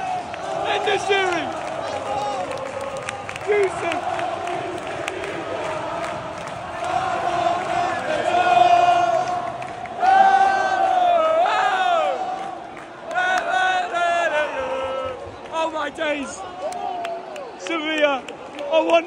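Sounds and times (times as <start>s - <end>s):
men singing and shouting nearby: 0.0s - 16.6s
football crowd chanting and singing: 0.0s - 19.0s.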